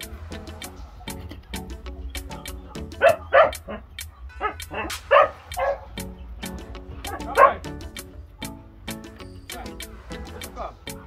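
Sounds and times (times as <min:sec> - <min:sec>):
background music with a beat: 0:00.0 - 0:11.0
puppies yipping and barking: 0:00.6 - 0:11.0.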